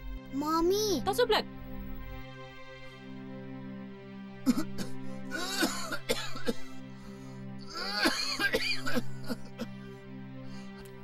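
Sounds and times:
soft background music: 0:00.0 - 0:11.0
person coughing: 0:04.5 - 0:06.7, 0:07.7 - 0:09.7.

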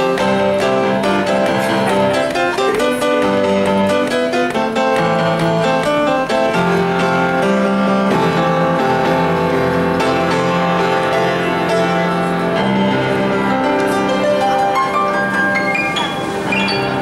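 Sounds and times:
upright piano playing: 0:00.0 - 0:17.0.

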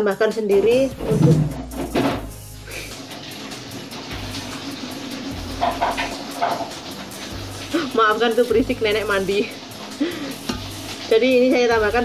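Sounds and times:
background music: 0:00.0 - 0:12.0
water rushing: 0:02.8 - 0:12.0.

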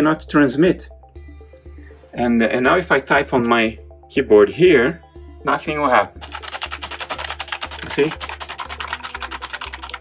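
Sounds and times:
fast typing on keyboard: 0:06.2 - 0:10.0.

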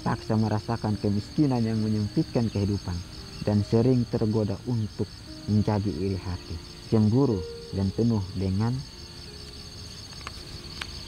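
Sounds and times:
crickets trilling: 0:00.0 - 0:11.0
faint clicks: 0:10.0 - 0:11.0.

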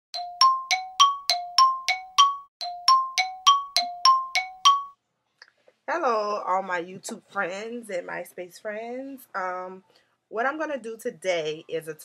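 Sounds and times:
bell-like chime jingle: 0:00.2 - 0:05.0.

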